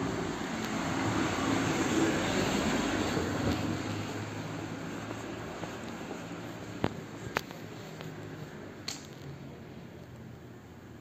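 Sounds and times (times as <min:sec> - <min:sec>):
vehicle passing: 0:00.0 - 0:08.8.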